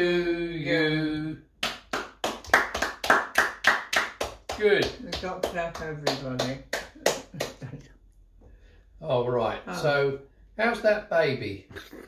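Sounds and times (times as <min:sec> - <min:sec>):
people clapping hands: 0:01.6 - 0:07.8.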